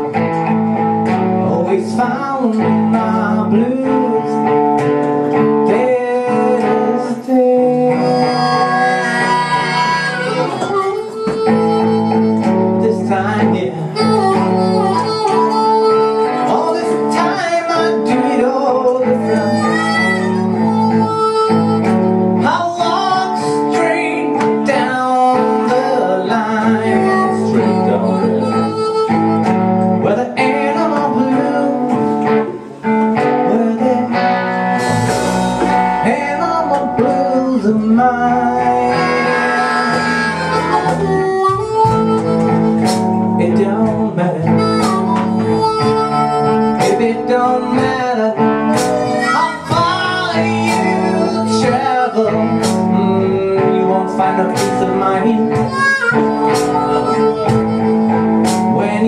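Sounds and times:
blues harmonica: 0.0s - 59.0s
cajon beat: 0.0s - 59.0s
deep bass guitar notes: 0.0s - 59.0s
electric guitar: 0.0s - 59.0s.

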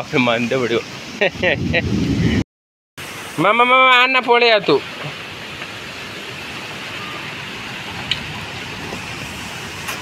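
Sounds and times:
rain falling on trees: 3.4s - 10.0s.

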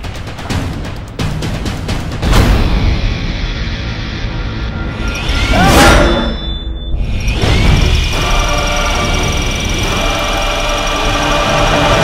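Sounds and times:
drone propellers whining: 2.8s - 12.0s.

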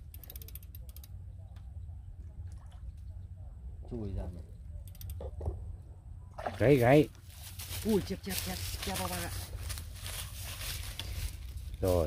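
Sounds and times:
low steady rumble: 0.0s - 12.0s
dry stalks crackling and rustling: 6.8s - 12.0s.

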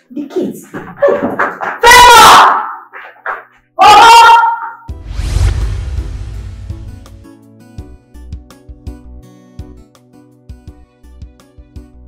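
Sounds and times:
woman shouting: 1.8s - 2.7s, 3.8s - 4.7s.

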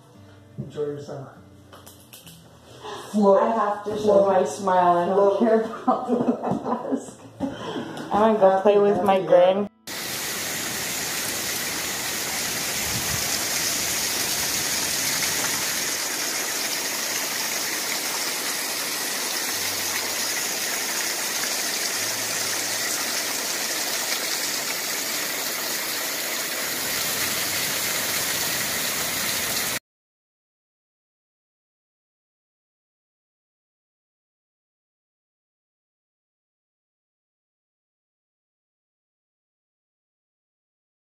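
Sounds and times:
waterfall over rocks: 9.9s - 29.8s.

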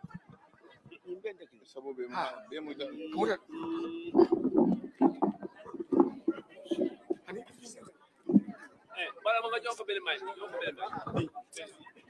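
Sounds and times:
men talking and shouting: 2.1s - 12.0s.

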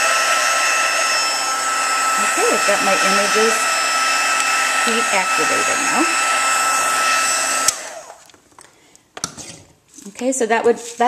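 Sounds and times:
heat tool blowing with whine: 0.0s - 8.3s.

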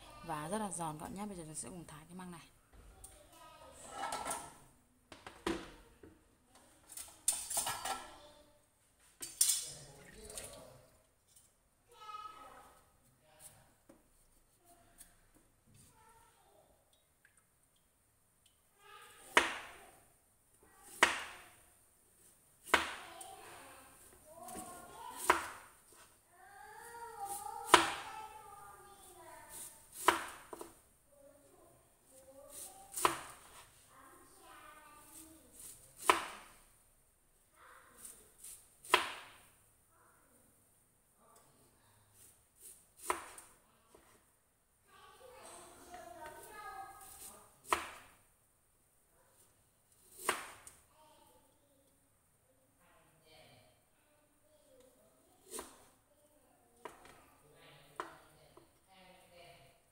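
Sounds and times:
knife chopping on cutting board: 20.9s - 21.4s, 24.5s - 25.6s, 29.5s - 30.7s, 32.5s - 33.4s, 36.0s - 36.5s, 43.0s - 43.4s, 47.0s - 48.0s.

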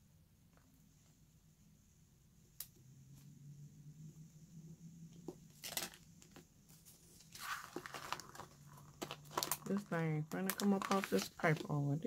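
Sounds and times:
faint low hum: 0.0s - 12.0s
stickers peeling with crackly rustles: 5.5s - 11.8s.

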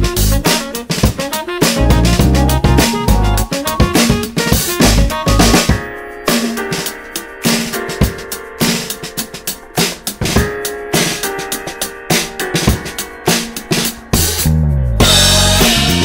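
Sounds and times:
band backing track: 0.0s - 16.0s
drum kit playing a groove: 0.0s - 16.0s
falling bass line: 1.8s - 4.0s, 14.2s - 16.0s.

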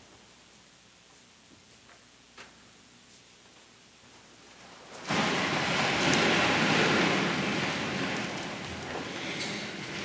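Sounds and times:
crowd rustling and shuffling: 5.0s - 10.0s.

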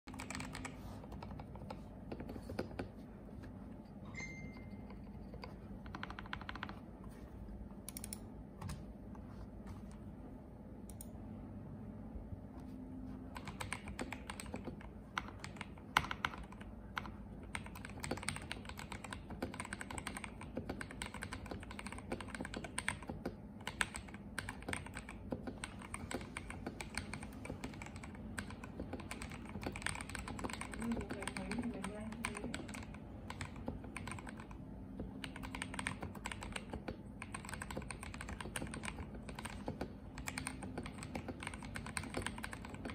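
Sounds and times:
mechanical keyboard typing: 0.1s - 3.0s, 4.2s - 6.9s, 7.8s - 8.8s, 13.3s - 42.9s.

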